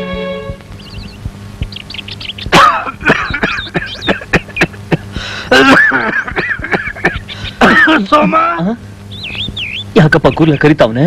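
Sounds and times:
faint bird chirps: 0.6 - 4.9, 6.8 - 10.9
elderly man coughing and groaning: 2.5 - 8.6.

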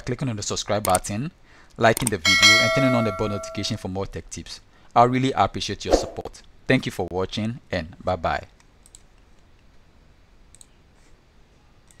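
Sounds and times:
computer mouse clicks: 0.8 - 1.0, 8.8 - 9.1, 10.5 - 10.8.

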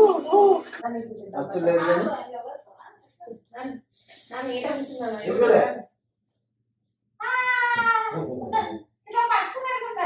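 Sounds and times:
young child crying: 7.2 - 8.3.

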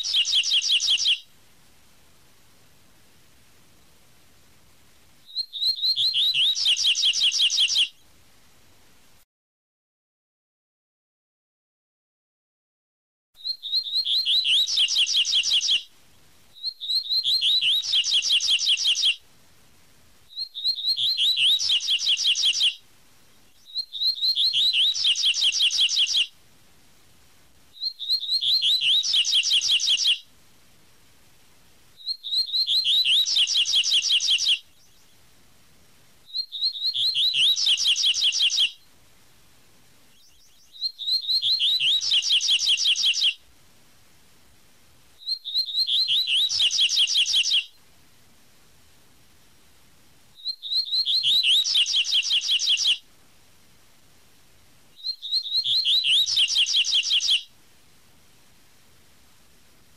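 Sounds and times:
bird singing whistled notes: 0.0 - 1.3, 5.2 - 8.1, 13.4 - 15.9, 16.6 - 19.2, 20.3 - 22.8, 23.5 - 26.4, 27.7 - 30.3, 32.0 - 35.2, 36.3 - 38.9, 40.1 - 43.4, 45.2 - 47.8, 50.4 - 53.0, 55.0 - 57.5.

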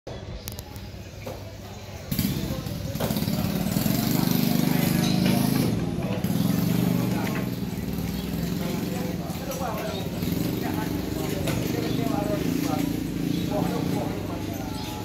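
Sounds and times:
people's voices: 0.1 - 15.0
engine running: 2.1 - 15.0.

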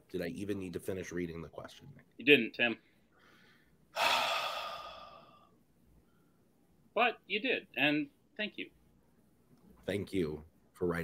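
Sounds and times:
person sighing: 4.0 - 5.5.

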